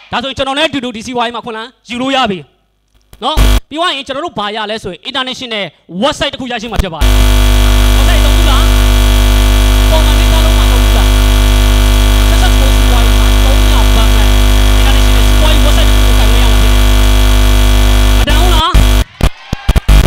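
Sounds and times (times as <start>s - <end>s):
electrical mains hum and buzz: 2.4s - 3.7s, 7.0s - 19.1s.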